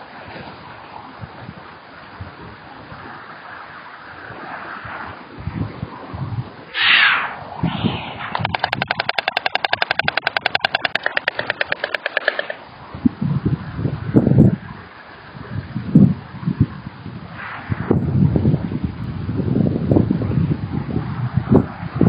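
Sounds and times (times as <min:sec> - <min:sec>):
microphone wind rumble: 0:05.4 - 0:06.6, 0:07.4 - 0:14.8, 0:15.4 - 0:22.0
stork bill clattering: 0:08.3 - 0:12.7.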